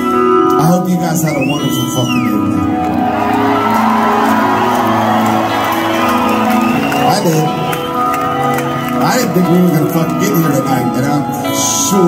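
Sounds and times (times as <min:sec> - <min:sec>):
amplified band music: 0:00.0 - 0:12.0
crowd cheering and shouting: 0:01.4 - 0:12.0.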